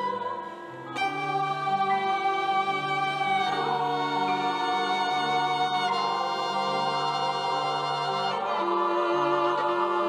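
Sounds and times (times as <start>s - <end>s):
violin: 0.0s - 10.0s
youth choir singing: 0.0s - 10.0s.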